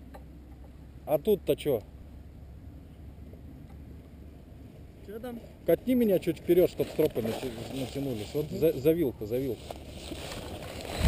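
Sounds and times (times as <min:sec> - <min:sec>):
wind buffeting microphone: 0:10.7 - 0:11.0.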